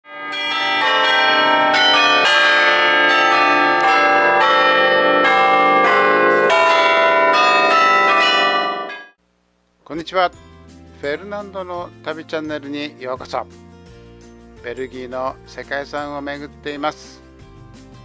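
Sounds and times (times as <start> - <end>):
tower bells ringing: 0.1 - 9.2.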